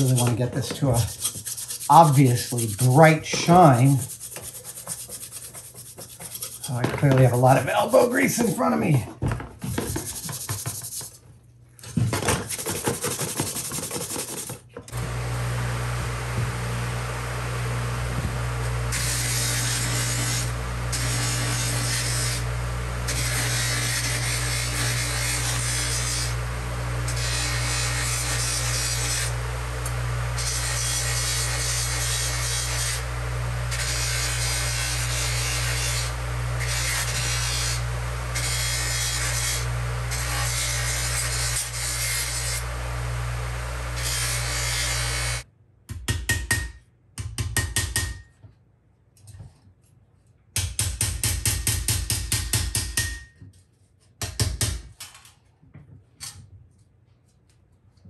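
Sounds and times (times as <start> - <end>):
electric grinder scrubbing metal: 14.9 - 45.4.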